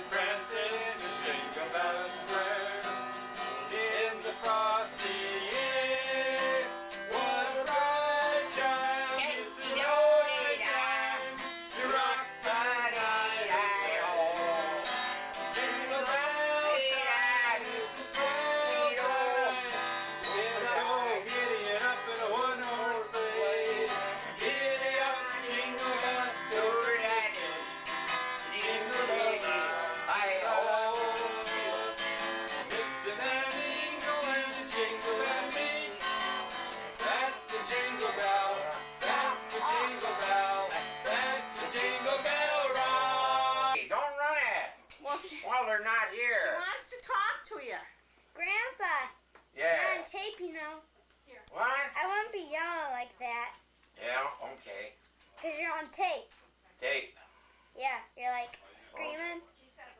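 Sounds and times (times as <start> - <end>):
acoustic guitar strumming: 0.0 - 43.8
person singing: 0.0 - 43.8.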